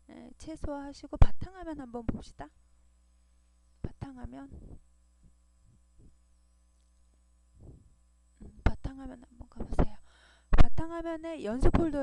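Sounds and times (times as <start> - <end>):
low electrical mains hum: 0.0 - 12.0.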